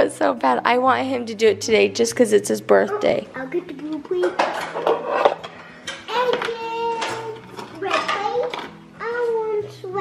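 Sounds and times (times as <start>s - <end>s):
soft background music: 0.0s - 10.0s
plastic cutlery clattering: 4.0s - 8.8s
child making sing-song sounds: 6.1s - 10.0s.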